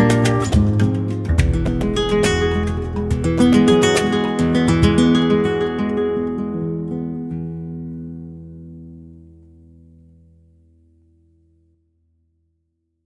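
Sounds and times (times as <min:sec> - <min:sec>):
flamenco guitar strummed chords: 0:00.0 - 0:10.4.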